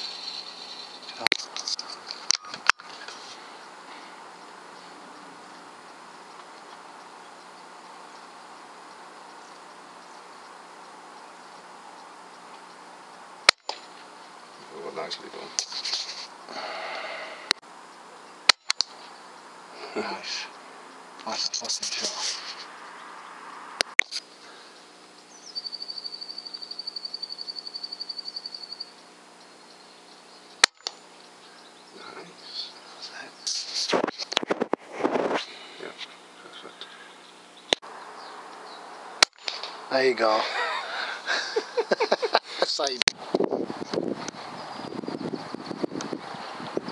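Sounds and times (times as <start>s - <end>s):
steady low hiss: 0.0s - 46.9s.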